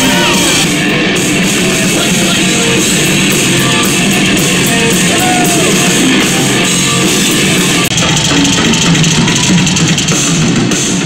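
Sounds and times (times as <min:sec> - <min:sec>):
drum kit: 0:00.0 - 0:11.0
live rock music: 0:00.0 - 0:11.0.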